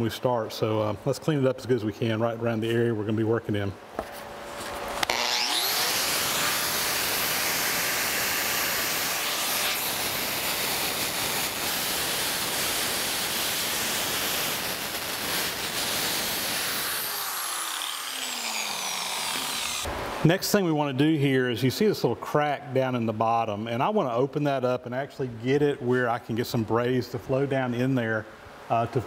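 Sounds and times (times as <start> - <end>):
angle grinder wire wheel: 5.0 - 19.9
wire wheel scrubbing metal: 5.1 - 19.9.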